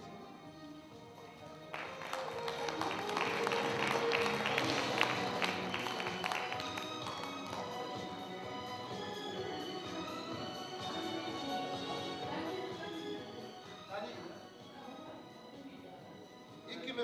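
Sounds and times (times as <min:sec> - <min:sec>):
background music with melody: 0:00.0 - 0:17.0
hand clapping: 0:01.7 - 0:08.1.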